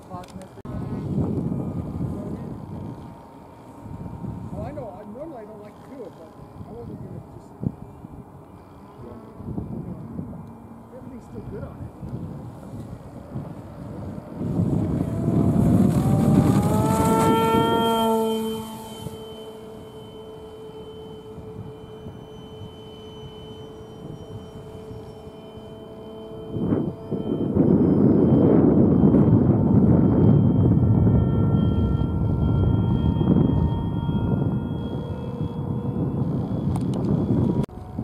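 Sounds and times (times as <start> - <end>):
electric motor and propeller whine: 0.0 - 38.0
faint steady tone: 0.8 - 38.0.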